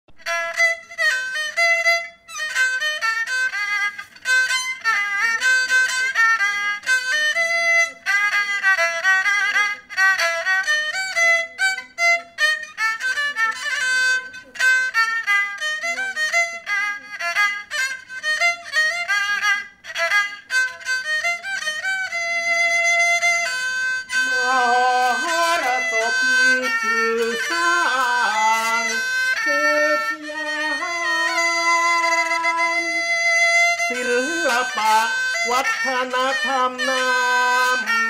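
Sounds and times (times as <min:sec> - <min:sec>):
bowed fiddle solo melody: 0:00.1 - 0:38.0.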